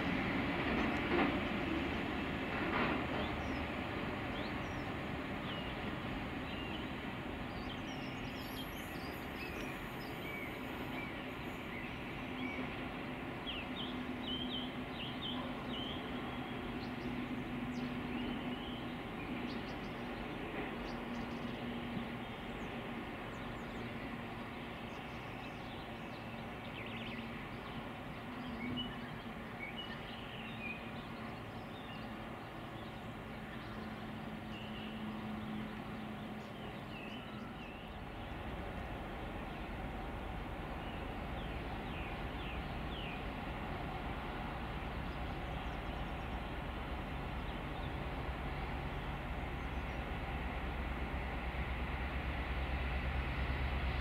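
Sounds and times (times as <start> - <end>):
distant diesel locomotive drone: 0.0 - 54.0.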